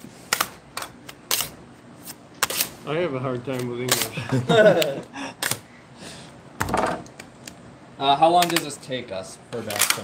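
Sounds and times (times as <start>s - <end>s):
hand slapping candy on steel table: 5.4s - 5.6s.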